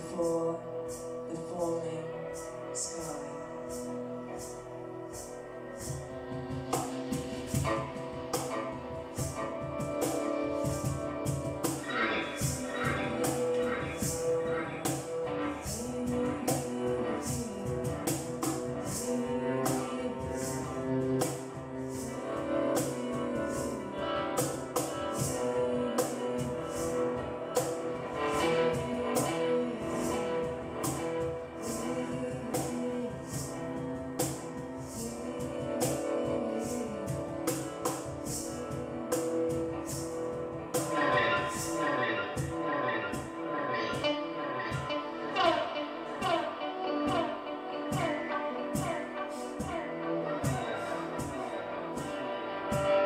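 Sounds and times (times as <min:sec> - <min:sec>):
guitar playing: 0:00.0 - 0:53.0.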